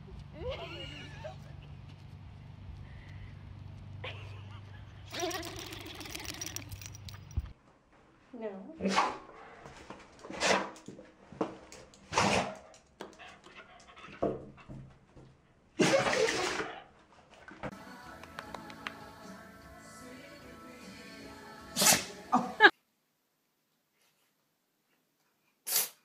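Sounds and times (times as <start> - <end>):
person laughing: 0.4 - 1.8, 4.0 - 6.1, 22.3 - 22.7
dog sneezing: 21.8 - 22.1, 25.6 - 26.0.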